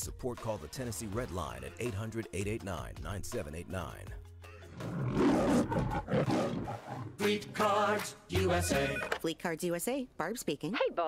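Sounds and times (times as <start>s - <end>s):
lion roar: 4.7s - 7.2s.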